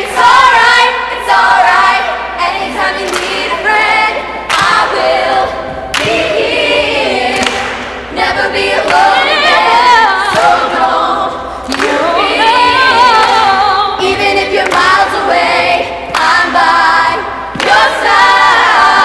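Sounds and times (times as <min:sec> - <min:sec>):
group singing a cappella: 0:00.0 - 0:19.0.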